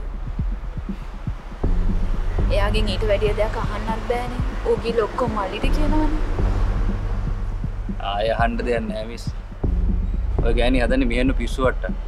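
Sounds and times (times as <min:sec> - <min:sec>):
soft low heartbeat-like thuds: 0:00.0 - 0:12.0
sustained bass drone: 0:00.0 - 0:12.0.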